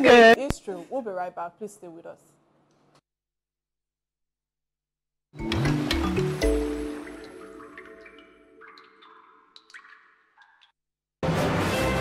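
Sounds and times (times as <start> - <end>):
water splash and drips: 5.4 - 10.8.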